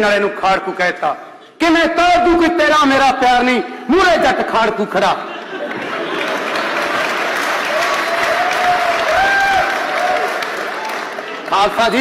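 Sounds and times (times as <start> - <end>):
audience applauding: 5.6 - 12.0.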